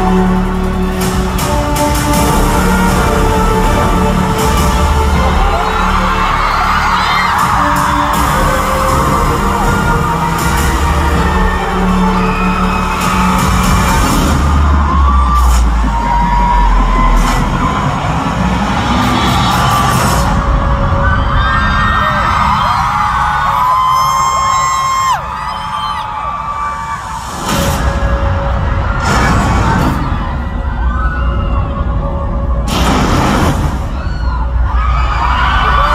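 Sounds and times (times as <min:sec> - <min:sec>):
concert music with heavy bass: 0:00.0 - 0:35.9
crowd screaming and cheering: 0:00.0 - 0:35.9.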